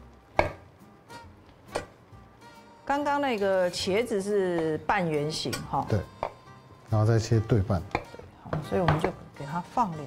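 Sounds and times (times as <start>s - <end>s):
faint background music: 0.0s - 10.0s
knife knocking on cutting board: 0.4s - 0.7s, 7.9s - 9.2s.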